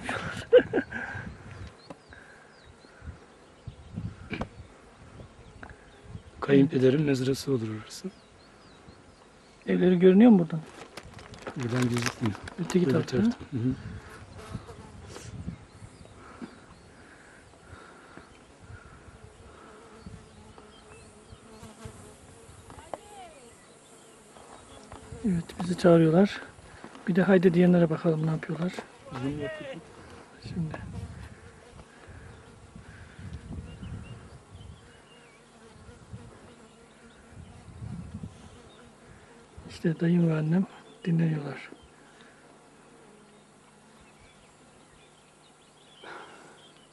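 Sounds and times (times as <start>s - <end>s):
faint insect buzz: 0.0s - 46.9s
insects chirping: 0.0s - 46.9s.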